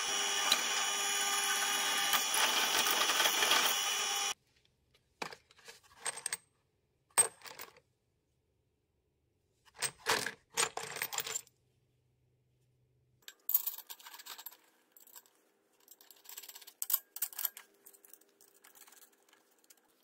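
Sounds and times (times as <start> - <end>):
drill press drilling metal: 0.0 - 4.4.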